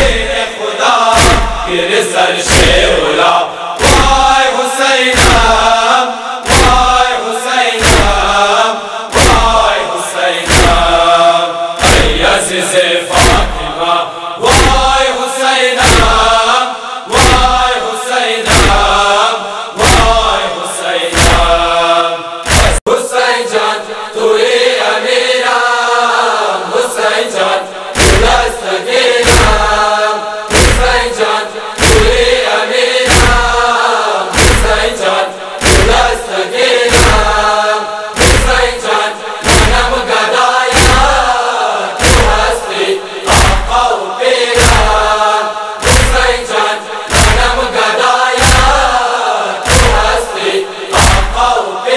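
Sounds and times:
voices chanting a lament: 0.0s - 51.9s
heavy thumping beat: 1.2s - 1.7s, 2.5s - 3.0s, 3.8s - 4.4s, 5.2s - 5.7s, 6.5s - 7.0s, 7.8s - 8.4s, 9.2s - 9.8s, 10.5s - 11.1s, 11.8s - 12.4s, 13.2s - 13.8s, 15.8s - 16.4s, 18.5s - 19.1s, 19.8s - 20.4s, 21.2s - 21.8s, 22.5s - 22.8s, 28.0s - 28.5s, 29.2s - 29.9s, 30.5s - 32.5s, 33.1s - 33.7s, 34.4s - 35.0s, 35.6s - 36.2s, 36.8s - 37.6s, 38.2s - 40.1s, 40.8s - 41.4s, 42.0s - 44.0s, 44.6s - 47.8s, 48.4s - 49.0s, 49.7s - 50.3s, 50.9s - 51.6s.

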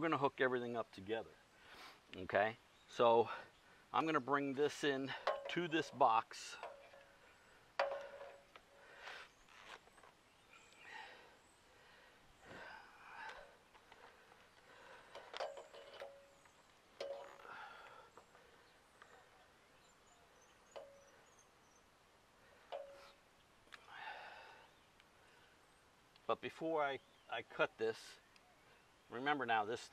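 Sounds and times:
soft rustles: 8.3s - 10.2s.

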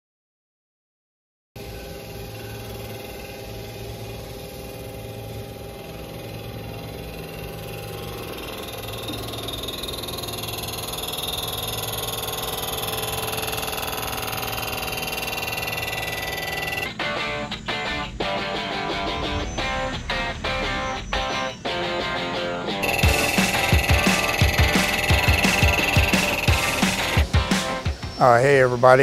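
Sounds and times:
machine hum of several tones: 1.6s - 17.0s, 22.8s - 28.2s
bright high machine whir: 1.6s - 28.4s.

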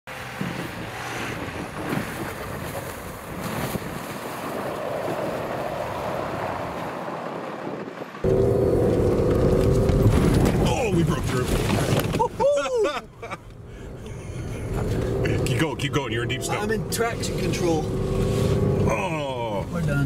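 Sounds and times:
wind rushing over microphone: 0.2s - 12.1s
pickup truck engine droning: 4.3s - 19.5s.

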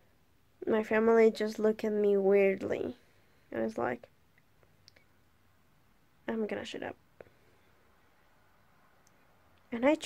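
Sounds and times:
faint small clicks: 4.3s - 5.1s, 9.0s - 9.7s.

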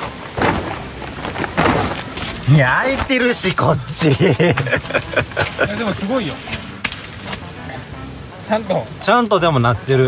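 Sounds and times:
tent sheet rustling: 0.0s - 7.6s.

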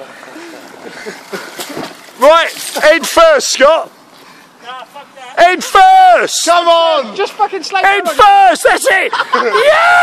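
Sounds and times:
water splashing and sloshing: 0.0s - 5.2s.

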